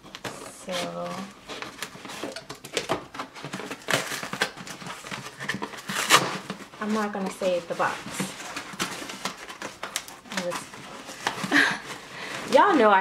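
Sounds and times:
cardboard box being cut open: 3.5 - 6.6.

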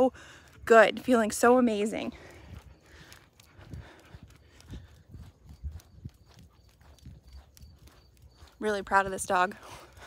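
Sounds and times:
footsteps on asphalt: 0.0 - 10.0.

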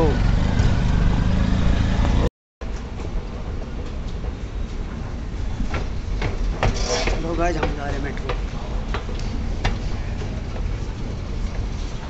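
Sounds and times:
vehicle rumble: 0.0 - 12.0
wind buffeting microphone: 2.9 - 12.0.

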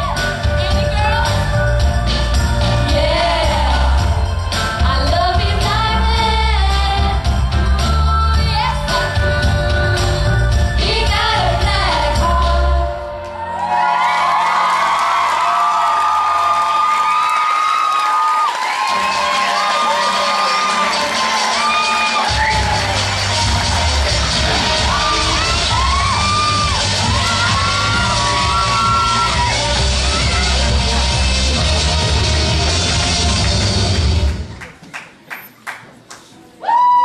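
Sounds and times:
pop backing track: 0.0 - 13.3, 19.0 - 34.5
bass-heavy music: 0.0 - 13.5, 19.0 - 34.6
audience cheering and screaming: 13.2 - 34.4, 36.6 - 37.0.

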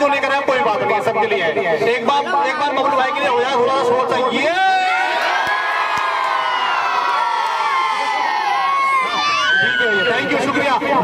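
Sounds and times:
crowd cheering and shouting: 4.4 - 11.0.

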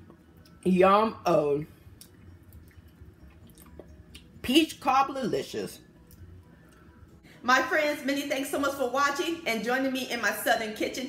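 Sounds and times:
low steady hum: 0.0 - 11.0
wet chewing mouth sounds: 1.9 - 4.3.

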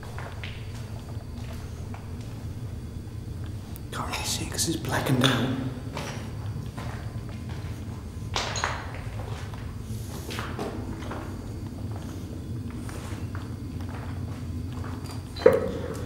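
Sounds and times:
steady low hum: 0.0 - 16.0.

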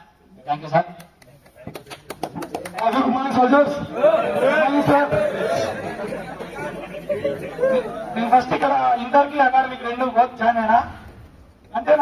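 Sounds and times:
people chattering: 1.3 - 10.4.

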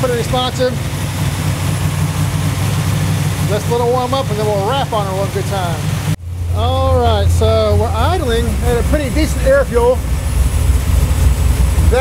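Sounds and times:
engine idling with pulsing exhaust: 0.0 - 12.0.

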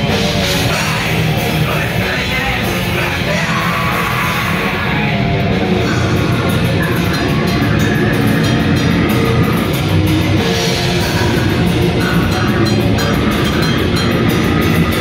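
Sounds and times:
harsh yelled vocals: 0.0 - 15.0
metal band playing live: 0.0 - 15.0.

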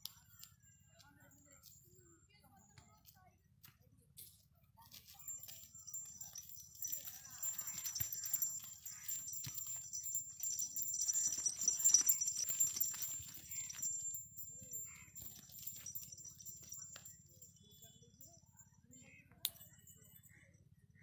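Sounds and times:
light jingling: 0.0 - 3.2, 4.2 - 20.4
hooves clopping on dirt: 4.8 - 17.5.

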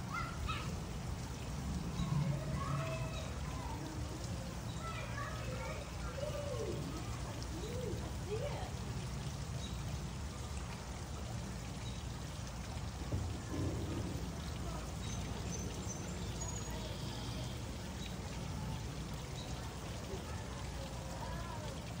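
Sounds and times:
faint distant voices: 0.0 - 22.0.

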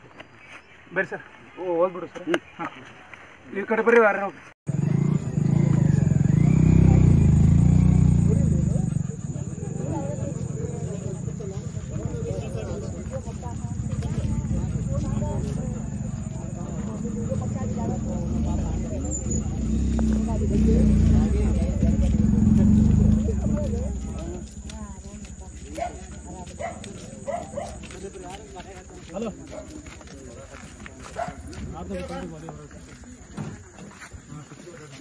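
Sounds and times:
heavy low rumble: 4.7 - 26.4
people talking: 5.7 - 35.0.

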